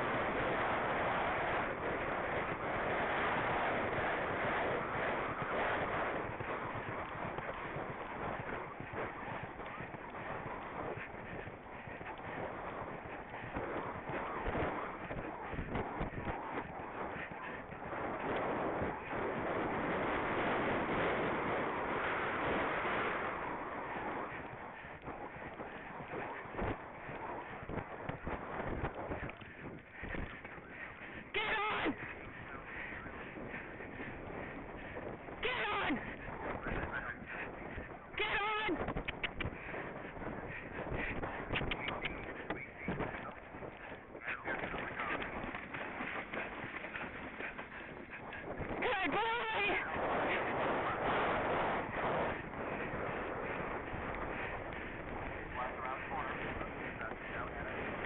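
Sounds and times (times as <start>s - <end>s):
horse hooves galloping on turf: 0.0s - 58.0s
wind on microphone: 0.0s - 58.0s.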